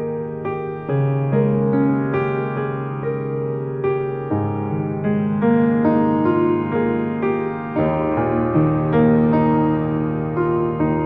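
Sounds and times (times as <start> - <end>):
slow solo piano music: 0.0 - 11.0.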